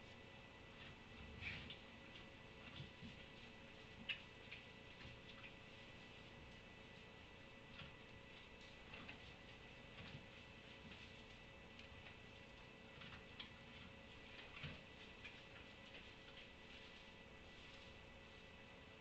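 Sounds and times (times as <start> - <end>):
faint irregular ticks: 0.0 - 18.5
steady low hum: 0.0 - 19.0.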